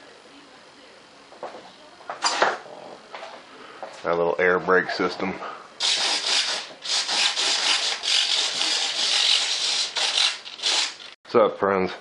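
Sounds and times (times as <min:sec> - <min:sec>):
harsh rasping rubbing: 0:05.8 - 0:11.1.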